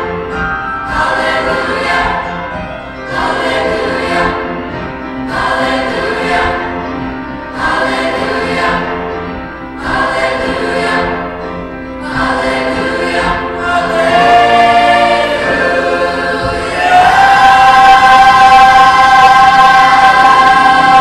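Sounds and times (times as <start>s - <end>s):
children's choir singing: 0.0s - 21.0s.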